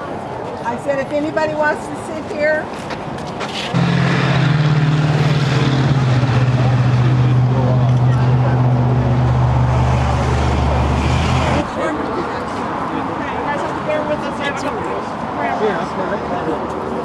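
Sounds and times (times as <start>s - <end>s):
low engine drone: 3.7s - 11.7s
deep rumble: 3.8s - 11.6s.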